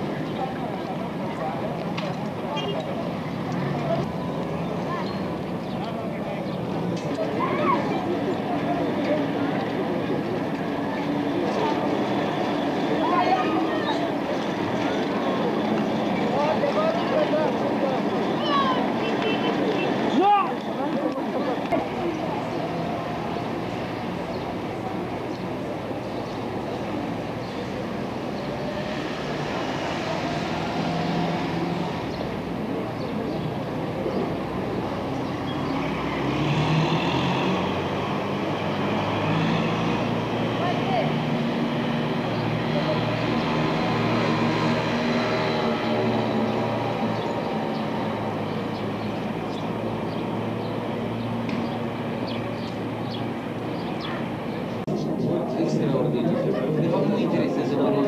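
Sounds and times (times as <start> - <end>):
indistinct voices: 0.0 - 58.0
vehicle engines passing: 0.0 - 58.0.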